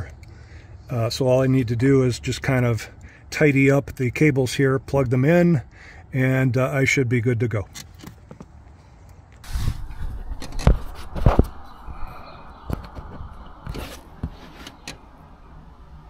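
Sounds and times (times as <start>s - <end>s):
hands rustling cables: 12.6s - 15.2s.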